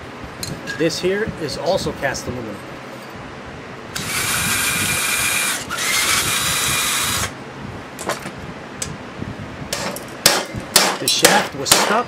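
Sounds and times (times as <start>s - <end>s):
power drill running: 4.0s - 7.4s.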